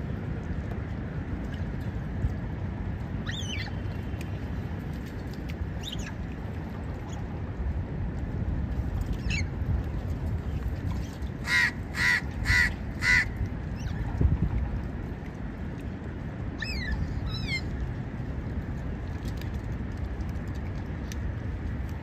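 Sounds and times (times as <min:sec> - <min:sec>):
low background rumble: 0:00.0 - 0:22.0.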